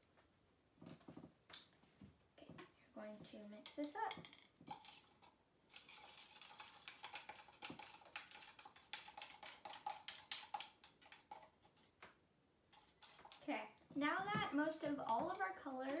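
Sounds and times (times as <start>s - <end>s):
stir stick scraping plastic cup: 3.2s - 16.0s.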